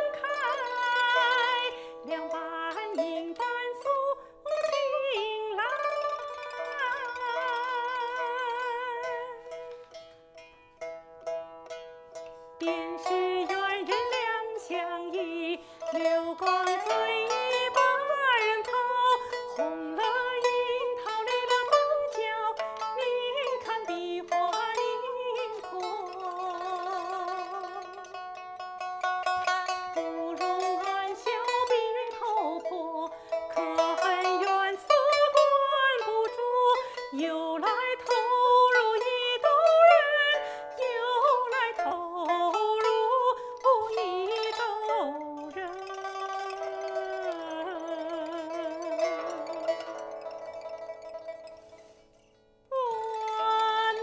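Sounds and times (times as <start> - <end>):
woman singing opera: 0.0 - 9.5, 12.6 - 28.1, 29.5 - 49.6, 52.7 - 54.0
plucked pipa strings: 0.0 - 54.0.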